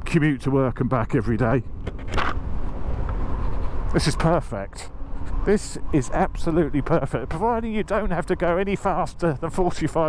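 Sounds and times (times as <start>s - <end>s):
road rumble: 0.0s - 10.0s
wind noise: 0.0s - 10.0s.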